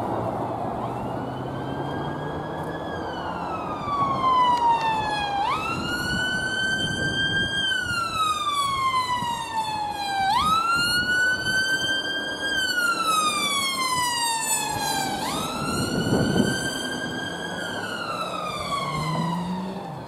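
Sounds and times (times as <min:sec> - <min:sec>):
ambulance siren wailing: 0:00.0 - 0:20.0.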